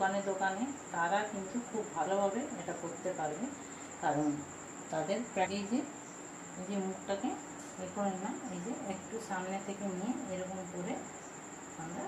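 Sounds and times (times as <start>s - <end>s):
woman speaking: 0.0s - 5.9s, 6.6s - 11.1s, 11.8s - 12.0s
cricket trilling: 0.0s - 12.0s.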